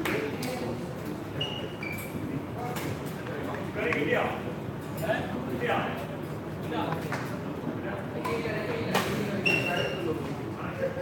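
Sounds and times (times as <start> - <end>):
people chatting: 0.0 - 1.4, 2.2 - 11.0
short high squeak: 9.4 - 10.1.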